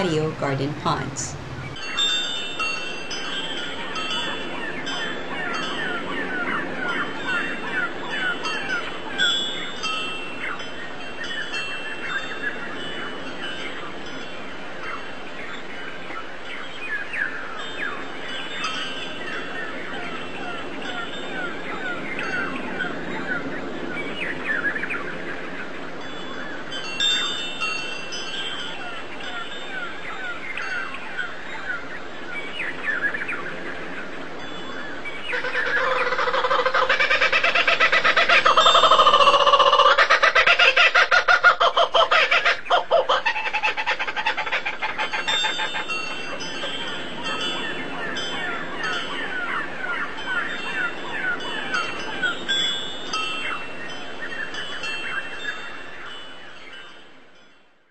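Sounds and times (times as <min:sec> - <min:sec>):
birds chirping: 0:00.0 - 0:57.0.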